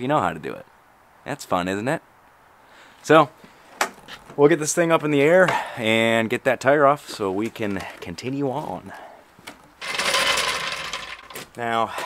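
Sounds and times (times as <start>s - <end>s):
floor jack rolling on concrete: 9.7s - 11.6s.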